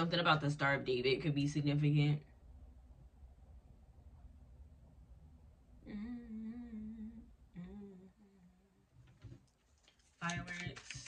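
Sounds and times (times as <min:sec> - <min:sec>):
woman humming: 0:05.8 - 0:08.9.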